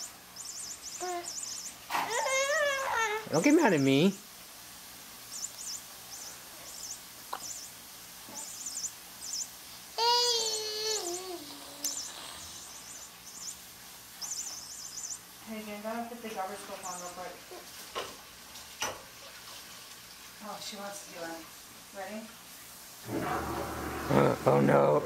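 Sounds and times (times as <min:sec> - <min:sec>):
babbling voice: 0:01.0 - 0:03.3, 0:10.0 - 0:12.2.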